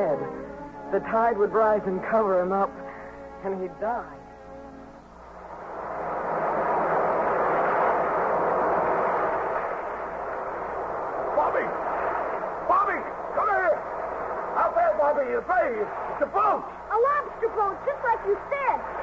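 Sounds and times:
surf wave rushing: 5.1 - 19.0.

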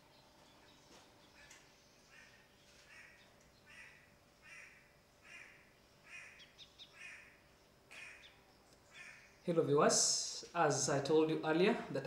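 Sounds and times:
bird calling faintly: 0.0 - 9.5.

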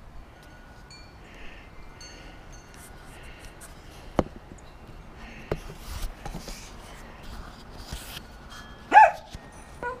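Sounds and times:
dog barking: 8.9 - 9.2
dog yelp: 8.9 - 10.0.

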